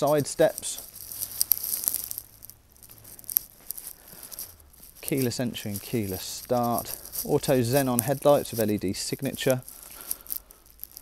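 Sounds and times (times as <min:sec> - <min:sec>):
handheld camera rustling and clicks: 0:00.0 - 0:11.0.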